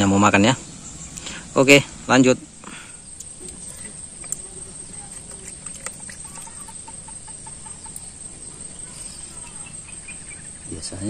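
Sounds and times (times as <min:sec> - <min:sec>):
high insect drone: 0:00.0 - 0:11.0
chicken clucking: 0:03.2 - 0:10.2.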